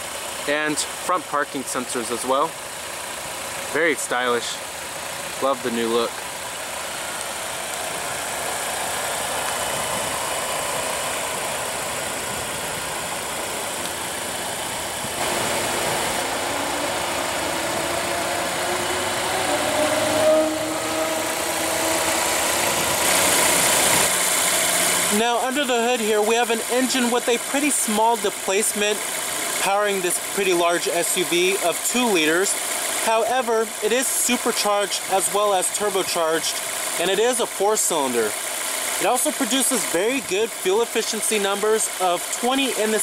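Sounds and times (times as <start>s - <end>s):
car engine idling: 0.0s - 43.0s
outdoor hiss: 21.2s - 43.0s.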